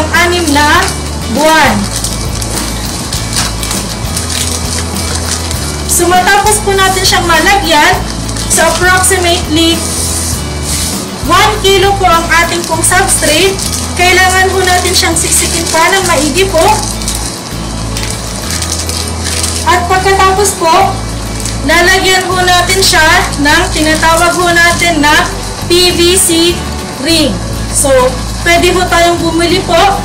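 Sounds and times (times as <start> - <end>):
background music: 0.0 - 30.0
substrate crunching in plastic bag: 0.4 - 25.6.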